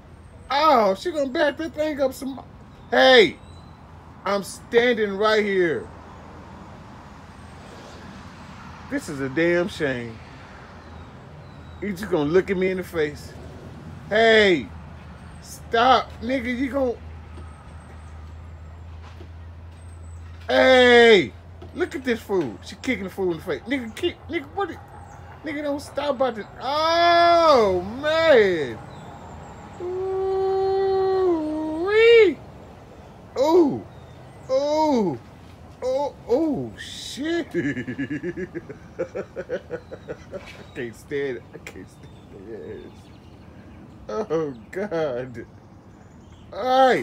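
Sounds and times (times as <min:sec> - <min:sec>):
man speaking: 0:00.5 - 0:03.4, 0:04.2 - 0:05.9, 0:08.9 - 0:10.2, 0:11.8 - 0:13.4, 0:14.1 - 0:14.7, 0:15.4 - 0:17.0, 0:20.5 - 0:24.8, 0:25.4 - 0:28.8, 0:29.8 - 0:32.4, 0:33.4 - 0:33.9, 0:34.5 - 0:38.7, 0:40.7 - 0:43.0, 0:44.1 - 0:45.5, 0:46.5 - 0:47.0
long howling cry: 0:29.7 - 0:32.4.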